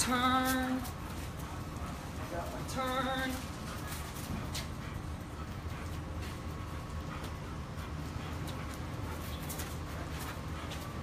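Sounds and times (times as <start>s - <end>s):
footsteps: 0.0s - 11.0s
light clicks of walking: 0.0s - 11.0s
steady low rumble: 0.0s - 11.0s.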